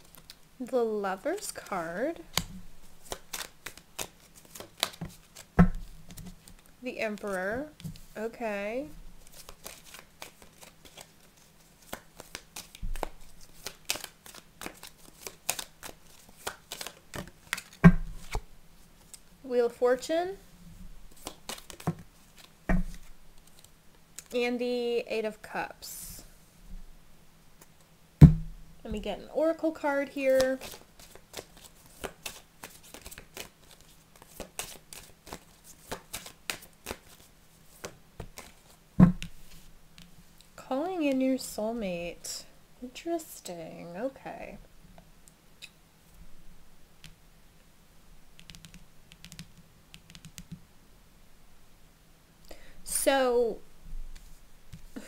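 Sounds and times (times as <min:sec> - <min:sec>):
cards being shuffled: 0:01.5 - 0:08.1, 0:09.2 - 0:18.4, 0:21.1 - 0:24.4, 0:30.3 - 0:39.7
loud thump: 0:28.2 - 0:28.6.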